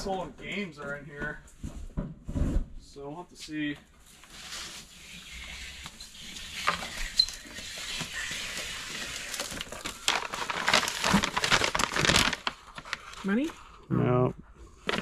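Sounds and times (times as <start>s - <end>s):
paper and packaging crinkling: 4.1s - 13.6s, 14.8s - 15.0s.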